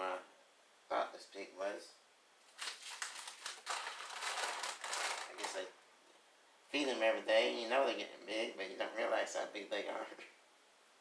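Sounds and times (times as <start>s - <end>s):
plastic bags crinkling and rustling: 2.4s - 5.7s.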